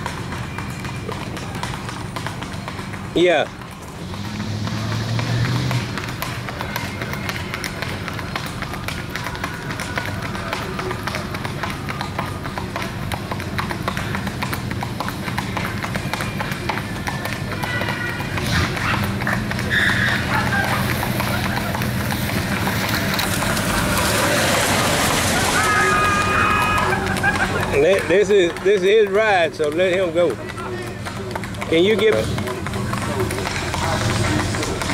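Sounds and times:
hoofbeats on pavement: 0.0s - 34.9s.

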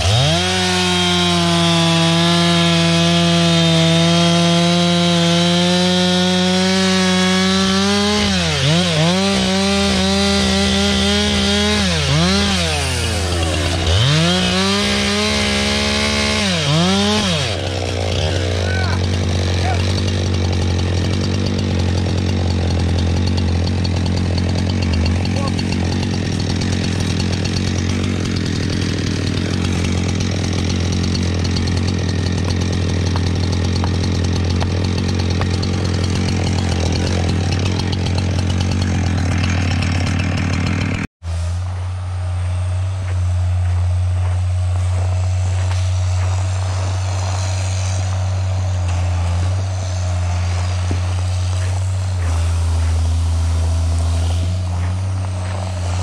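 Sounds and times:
chainsaw cutting through log: 0.0s - 56.0s
chainsaw running at high throttle: 0.0s - 56.0s.

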